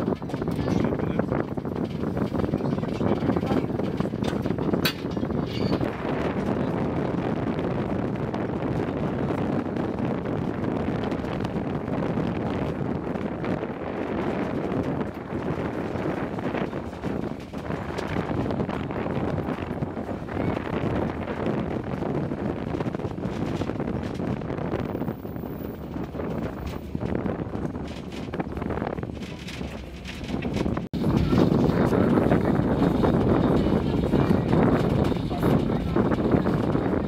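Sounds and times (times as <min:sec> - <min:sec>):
train rolling rumble: 0:00.0 - 0:37.0
wind buffeting microphone: 0:00.0 - 0:37.0.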